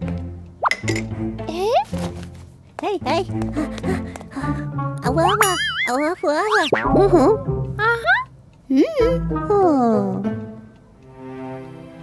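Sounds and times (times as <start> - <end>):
light background music: 0.0 - 12.0
cartoon gibberish voice: 5.0 - 10.1.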